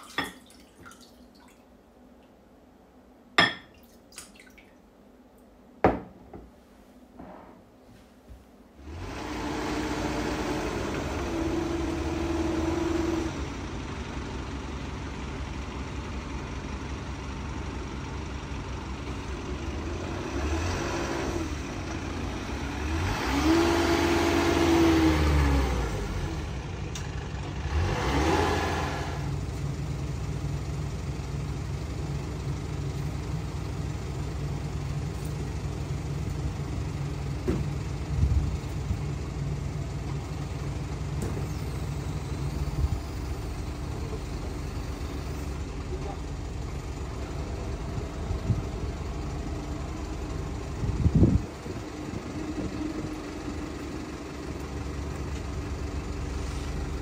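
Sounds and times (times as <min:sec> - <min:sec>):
truck engine revving: 0:08.8 - 0:15.0, 0:19.4 - 0:30.1.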